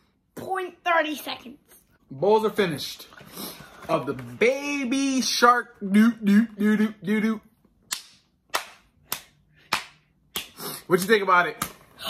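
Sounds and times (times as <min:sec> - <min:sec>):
sharp hand claps: 0:07.9 - 0:10.6.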